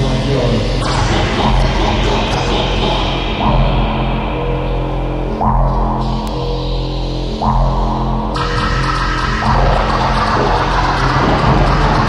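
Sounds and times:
distorted techno music: 0.0s - 12.0s
steady low bass: 0.0s - 12.0s.

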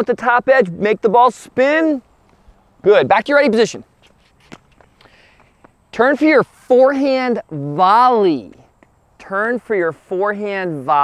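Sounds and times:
footsteps on hard court: 3.6s - 6.2s.

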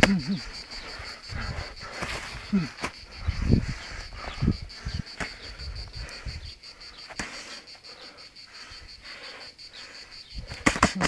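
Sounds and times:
insect pulsing chirp: 0.0s - 11.0s.

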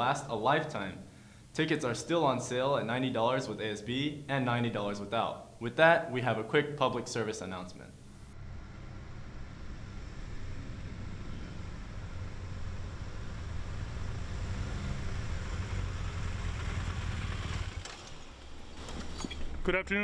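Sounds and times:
motorcycle engines running: 8.1s - 19.6s.

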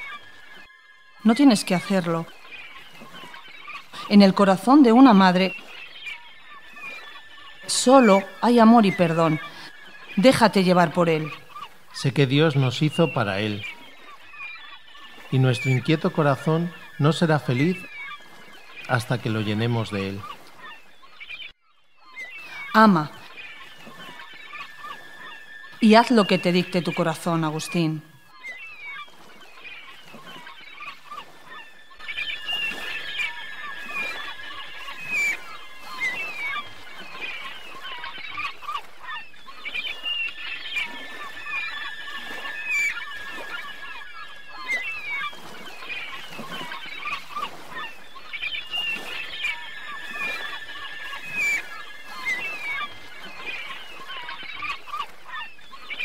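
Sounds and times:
birds calling: 0.0s - 56.0s.

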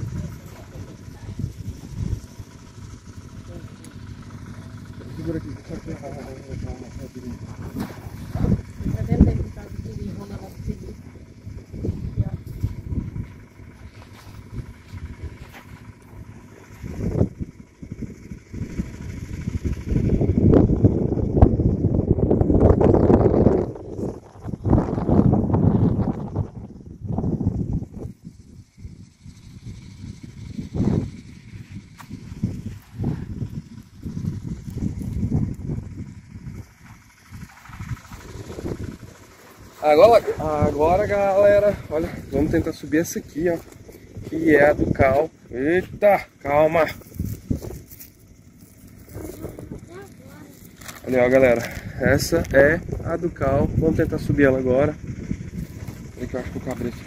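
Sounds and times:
low rumble: 0.0s - 57.0s.

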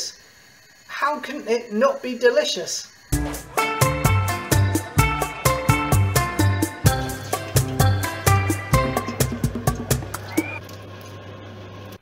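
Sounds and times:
hot oil sizzling: 2.9s - 12.0s.

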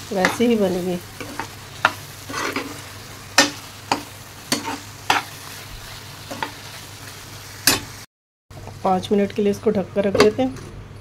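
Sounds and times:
faint sizzle: 0.0s - 10.2s
metal spatula scraping a pan: 0.1s - 5.5s.

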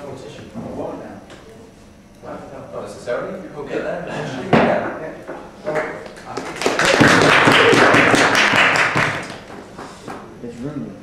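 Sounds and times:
audience clapping: 5.7s - 10.2s.

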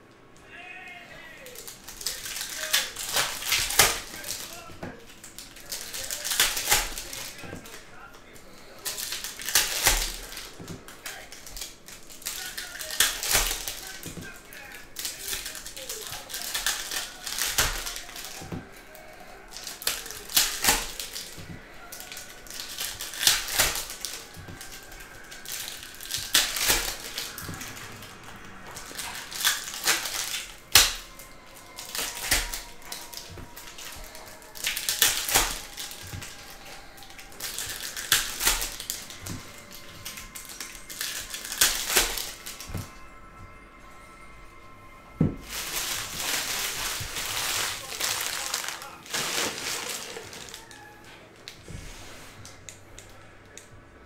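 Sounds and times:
cards clicking and snapping: 1.4s - 43.1s, 45.2s - 53.9s.

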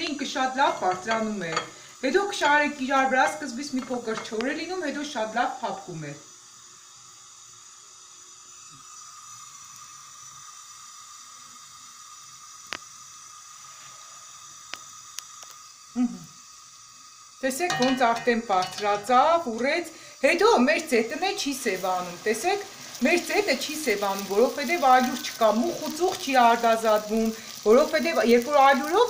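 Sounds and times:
dough sizzling in oil: 0.0s - 29.0s
oil ticking: 16.9s - 29.0s.

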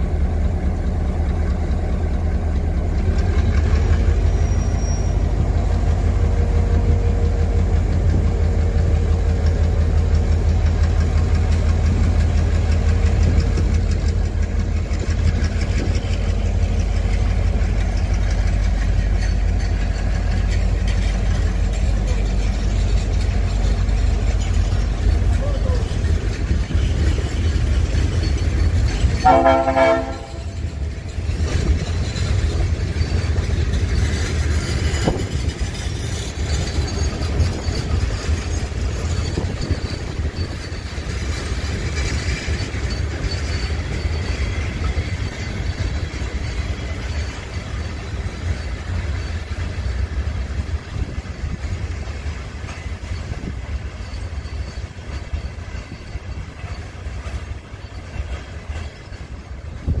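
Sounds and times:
train coaches rolling on rails: 0.0s - 60.0s.

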